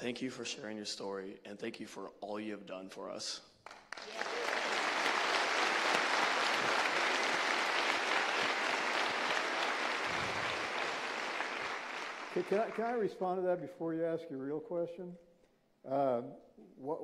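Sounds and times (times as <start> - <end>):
large audience applauding: 3.7 - 13.0.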